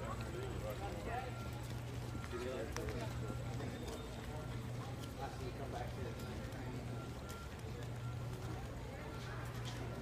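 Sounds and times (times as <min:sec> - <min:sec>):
footsteps on stone paving: 0:00.1 - 0:05.3.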